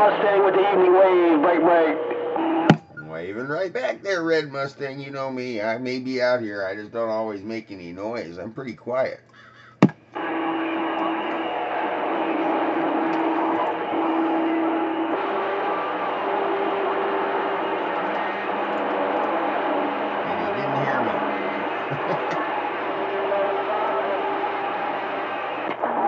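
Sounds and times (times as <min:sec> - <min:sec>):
radio static hiss: 0:00.0 - 0:04.5, 0:10.2 - 0:26.0
heterodyne whistles: 0:10.2 - 0:19.2
wavering radio tone: 0:10.2 - 0:26.0.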